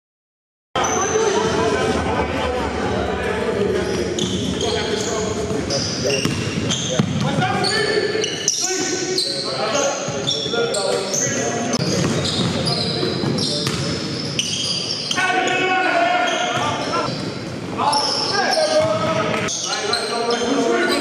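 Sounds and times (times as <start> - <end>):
players' voices: 0.8 - 21.0
high-pitched shoe squeaks: 3.8 - 7.0, 7.6 - 15.2
basketball bouncing on hardwood: 6.2 - 7.2.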